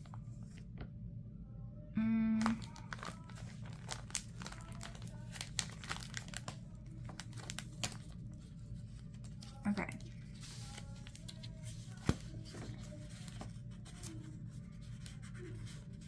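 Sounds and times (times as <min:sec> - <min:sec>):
plastic sheets crinkling: 0:02.4 - 0:15.7.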